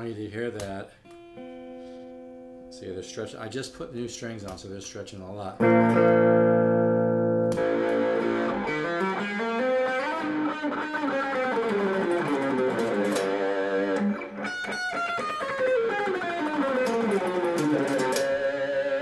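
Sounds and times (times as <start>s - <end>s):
electric guitar playing: 1.0s - 2.7s, 5.6s - 19.0s
scratchy guitar picking: 1.0s - 2.7s, 5.6s - 19.0s.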